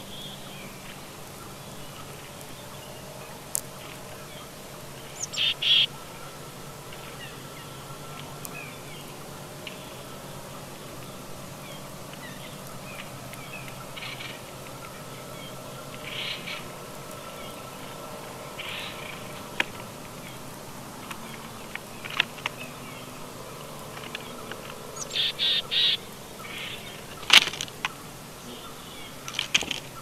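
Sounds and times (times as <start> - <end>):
faint bird chirps: 0.0 - 23.3, 24.0 - 30.0
harsh bird calls: 0.0 - 30.0
steady faint hum: 0.0 - 30.0.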